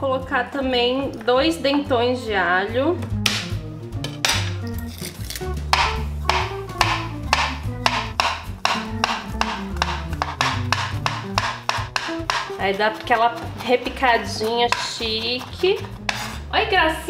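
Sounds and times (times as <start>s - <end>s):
background music with bass line: 0.0s - 17.0s
knife chopping on wooden board: 3.1s - 4.6s, 5.7s - 16.5s.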